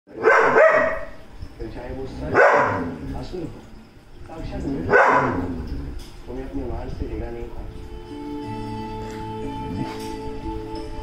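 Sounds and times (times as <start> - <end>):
dog barking: 0.1 - 1.2, 2.3 - 3.0, 4.8 - 5.5.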